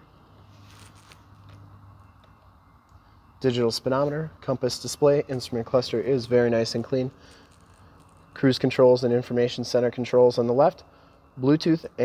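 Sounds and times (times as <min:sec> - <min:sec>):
low steady hum: 0:00.0 - 0:12.0
handling noise: 0:00.3 - 0:02.4.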